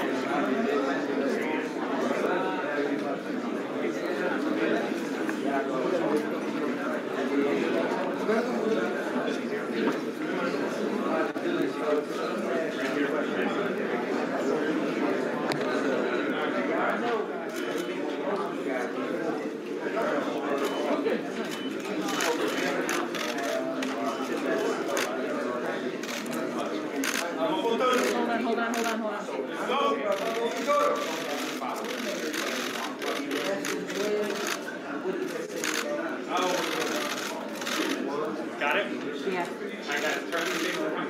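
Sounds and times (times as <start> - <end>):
many voices talking: 0.0 - 41.0
people chattering: 0.0 - 41.0.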